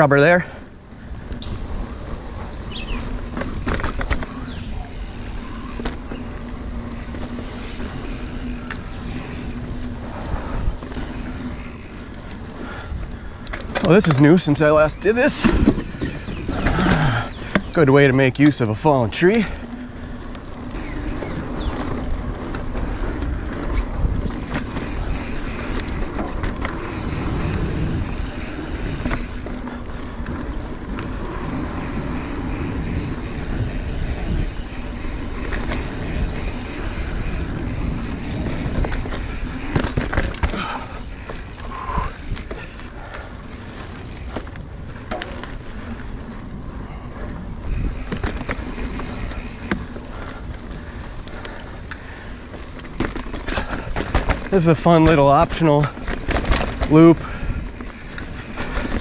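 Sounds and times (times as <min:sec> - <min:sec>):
bike rattling over bumps: 0:00.0 - 0:59.0
bike tyres on dirt: 0:00.0 - 0:59.0.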